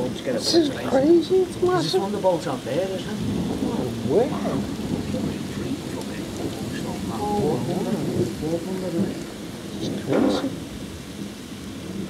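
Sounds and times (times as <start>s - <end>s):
rain falling: 0.0s - 12.0s
thunder rumbling: 0.0s - 12.0s.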